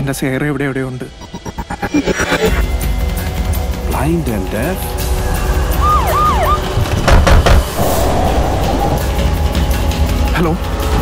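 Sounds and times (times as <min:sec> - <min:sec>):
trailer music: 0:00.7 - 0:11.0.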